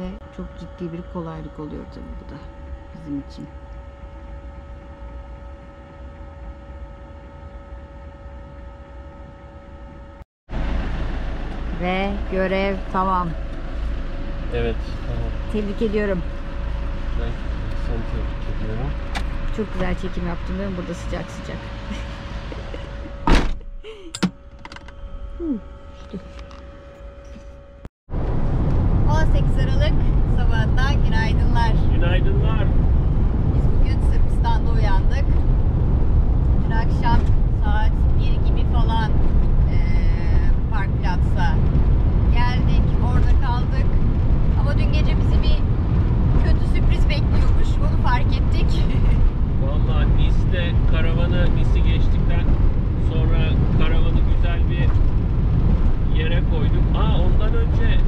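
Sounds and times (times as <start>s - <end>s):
people talking: 0.0s - 3.5s, 11.7s - 13.4s, 14.5s - 16.2s, 17.2s - 23.1s, 25.4s - 26.4s, 29.1s - 32.7s, 33.6s - 35.4s, 36.7s - 39.1s, 39.7s - 41.6s, 42.3s - 44.0s, 44.6s - 45.6s, 46.4s - 55.0s, 56.1s - 58.0s
road and engine noise in van cab: 0.0s - 58.0s.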